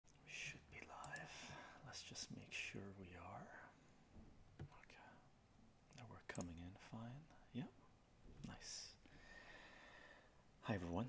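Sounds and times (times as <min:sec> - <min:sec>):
man whispering: 0:00.1 - 0:03.8, 0:04.6 - 0:09.1.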